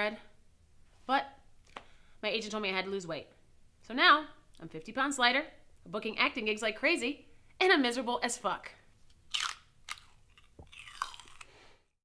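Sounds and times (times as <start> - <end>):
person crunching vegetable: 9.0 - 12.0.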